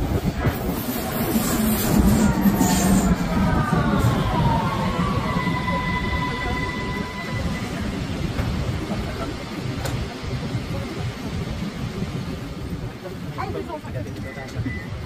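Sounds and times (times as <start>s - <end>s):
station rumble: 0.0s - 13.2s
voices: 1.9s - 15.0s.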